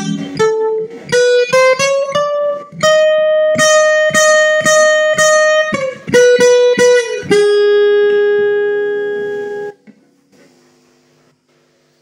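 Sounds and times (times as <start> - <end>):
acoustic guitar note ringing: 0.0 - 9.8.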